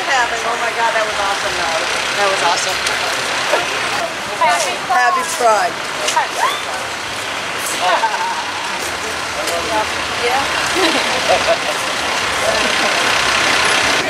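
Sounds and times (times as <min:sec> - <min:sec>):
passers-by voices: 0:00.0 - 0:14.0
passing motor vehicle: 0:00.0 - 0:14.0.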